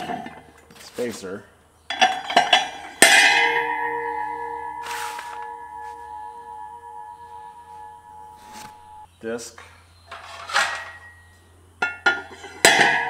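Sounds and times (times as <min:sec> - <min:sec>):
steel parts clinking: 0:01.9 - 0:06.2, 0:10.1 - 0:11.2
sharp metal strike ringing: 0:02.8 - 0:09.1, 0:12.6 - 0:13.0.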